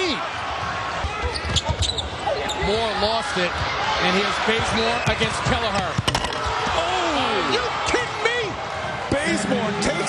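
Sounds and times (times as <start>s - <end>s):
crowd voices and shouting: 0.0s - 10.0s.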